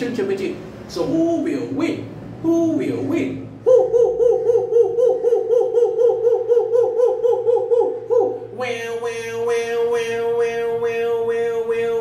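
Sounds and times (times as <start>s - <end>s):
man hooting: 3.6s - 12.0s
man singing a held note: 6.0s - 12.0s.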